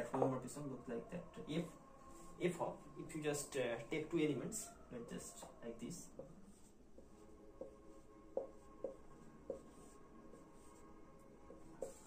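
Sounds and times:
marker pen writing on whiteboard: 3.9 - 12.0.

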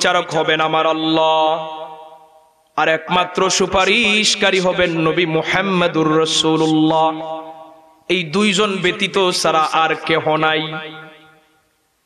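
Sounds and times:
man chanting through a microphone: 0.0 - 11.2.

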